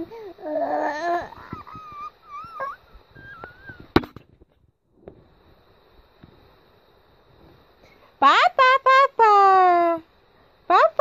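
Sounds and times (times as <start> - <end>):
baby babbling: 0.0 - 3.8
baby squealing: 0.6 - 4.0.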